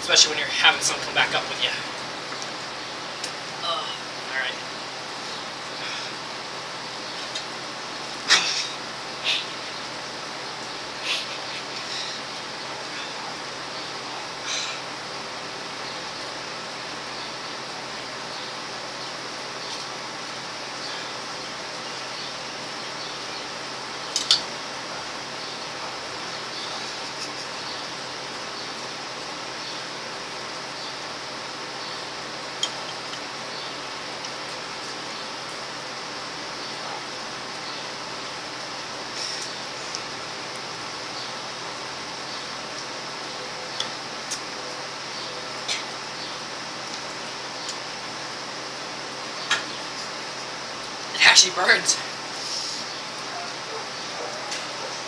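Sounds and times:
steady background hiss: 0.0s - 55.0s.

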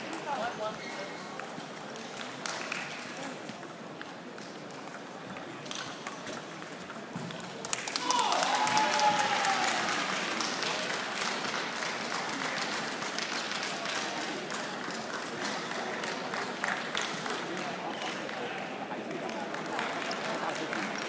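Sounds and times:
spectators clapping: 1.6s - 3.4s, 7.3s - 21.0s.

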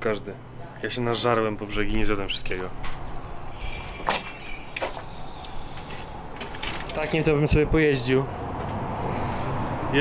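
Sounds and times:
outdoor street noise hiss: 0.0s - 10.0s.

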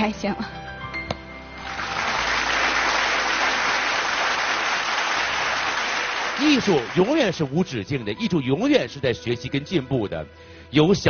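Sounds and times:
audience applauding: 1.6s - 7.6s.

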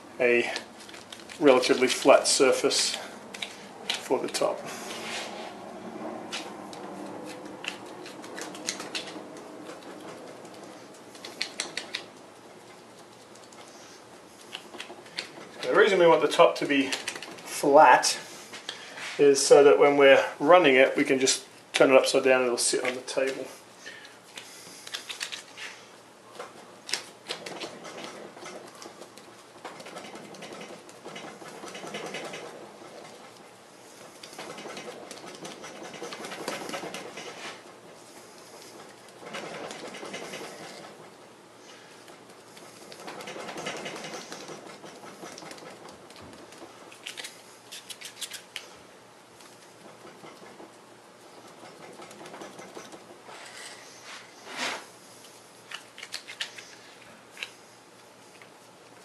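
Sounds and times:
gloved hands rubbing dough: 0.4s - 19.5s.

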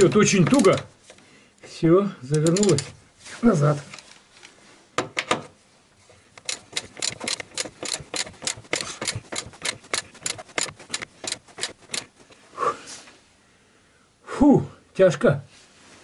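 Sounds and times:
ratchet wrench clicking: 0.0s - 0.8s, 2.3s - 2.9s, 6.4s - 12.3s.

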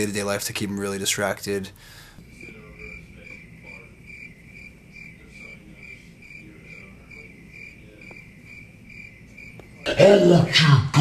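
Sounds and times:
cricket chirping: 2.3s - 10.3s.

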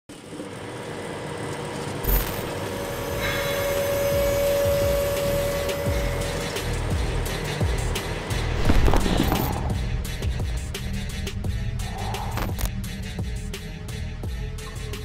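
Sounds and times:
deep rumble: 8.3s - 12.7s
sharp hit: 8.5s - 10.0s.

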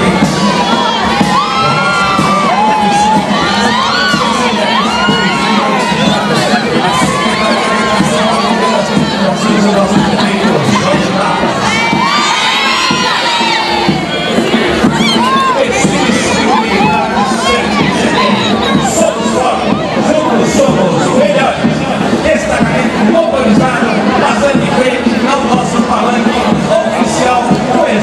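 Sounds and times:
children shouting and cheering: 0.0s - 28.0s.

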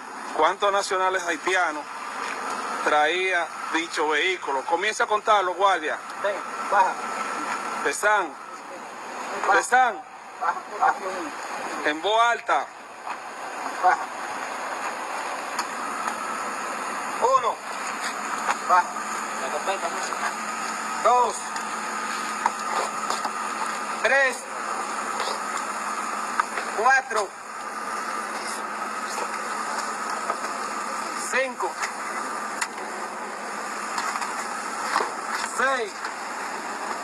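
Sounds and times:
steady rushing background noise: 0.0s - 37.0s
thin steady whine: 0.0s - 37.0s
vehicle engine idling: 0.0s - 37.0s.

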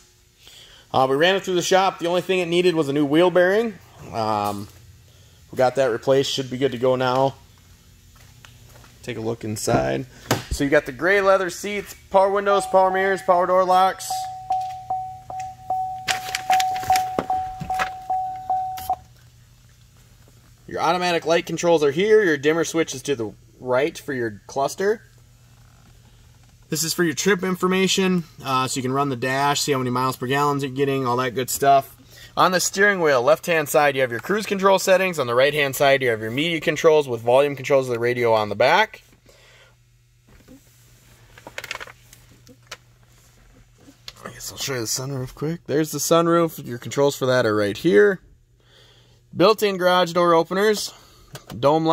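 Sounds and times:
low steady hum: 0.0s - 51.9s
car warning chime pulsing: 12.3s - 19.1s.

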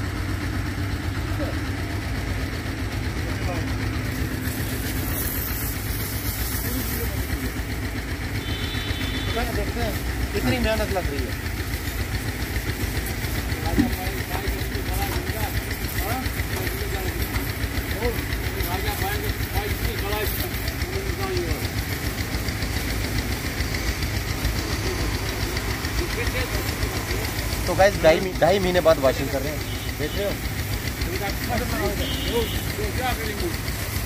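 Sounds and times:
tractor engine running: 0.0s - 34.0s
pressure hose spray hissing: 4.0s - 7.7s, 8.9s - 34.0s.

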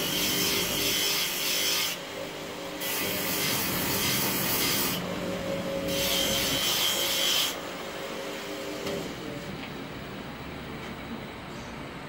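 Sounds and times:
bench grinder humming: 0.0s - 8.7s.

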